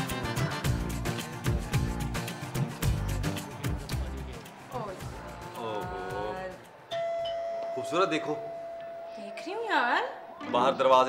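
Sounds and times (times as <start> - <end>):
doorbell ringing: 6.9 - 10.7.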